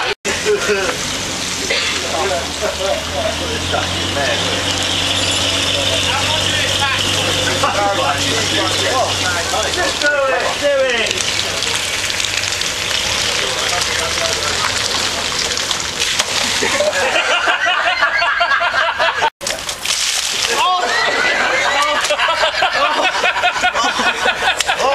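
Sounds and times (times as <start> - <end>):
people talking: 0.0 - 12.2, 12.9 - 15.9, 20.4 - 24.9
vehicle engine drone: 0.0 - 17.5.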